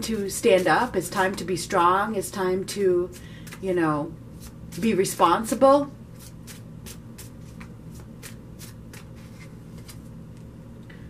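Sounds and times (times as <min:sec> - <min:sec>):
cards being shuffled: 0:06.2 - 0:10.1.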